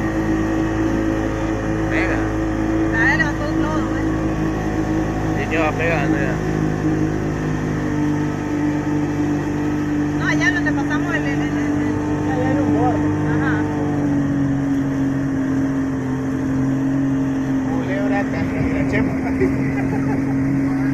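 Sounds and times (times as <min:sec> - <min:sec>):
outboard motor running: 0:00.0 - 0:20.9.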